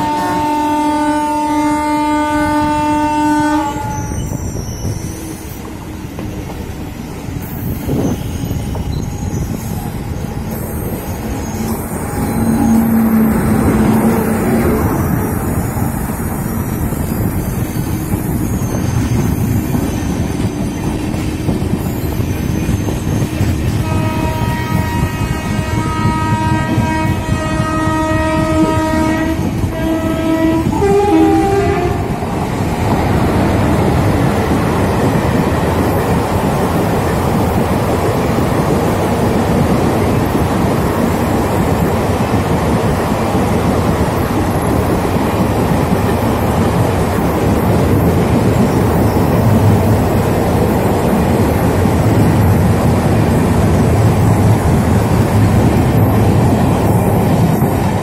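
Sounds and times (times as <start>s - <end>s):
train air horn: 0.0s - 4.3s, 10.6s - 16.5s, 23.6s - 32.2s
train wheels rolling on rails: 0.0s - 58.0s.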